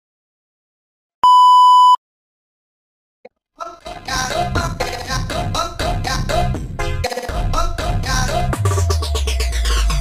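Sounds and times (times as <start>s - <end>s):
electronic test-tone beep: 1.2s - 2.0s.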